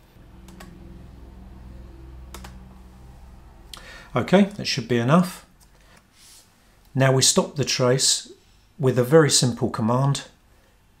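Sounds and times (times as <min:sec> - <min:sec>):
steady low hum: 0:00.0 - 0:09.2
computer mouse clicks: 0:00.4 - 0:00.8, 0:02.3 - 0:02.6.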